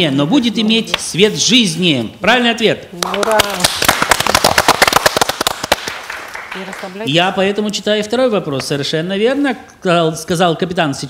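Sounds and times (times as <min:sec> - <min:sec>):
small group clapping: 0:03.0 - 0:07.1.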